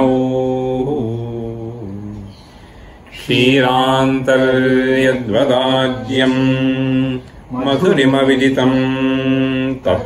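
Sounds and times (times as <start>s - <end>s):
man chanting melodically: 0.0s - 2.4s, 3.1s - 10.0s.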